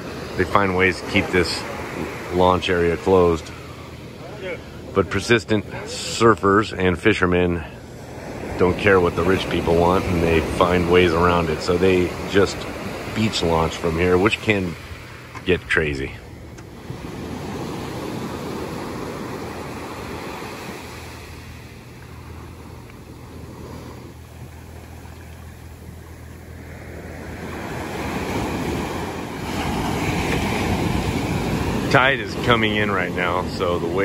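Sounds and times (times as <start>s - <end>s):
ocean waves breaking on beach: 0.0s - 34.0s.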